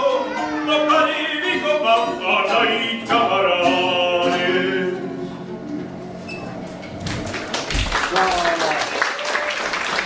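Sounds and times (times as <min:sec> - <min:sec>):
ukulele and acoustic guitar: 0:00.0 - 0:08.2
audience applause: 0:07.3 - 0:10.0.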